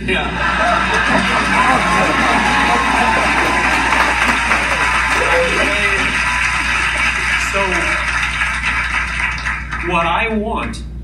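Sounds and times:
man talking over loudspeakers: 0:07.4 - 0:08.0.

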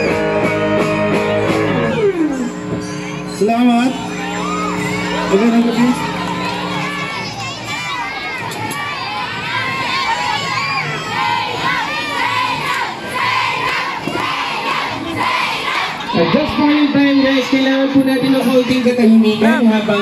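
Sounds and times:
crowd cheering and shouting: 0:00.0 - 0:20.0.

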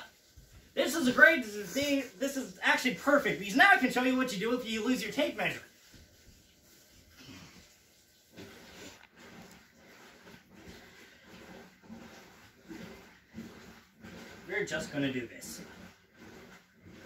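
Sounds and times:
cloth rustling: 0:00.0 - 0:17.0.

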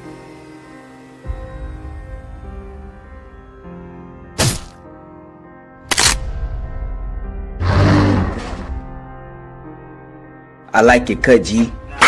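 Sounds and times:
background music: 0:00.0 - 0:12.0
monster roar: 0:07.6 - 0:08.7.

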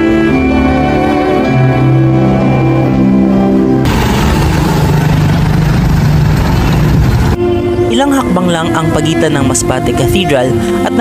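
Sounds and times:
background music: 0:00.0 - 0:11.0
street traffic rumble: 0:03.7 - 0:11.0
motorcycle engine running: 0:03.8 - 0:07.4.

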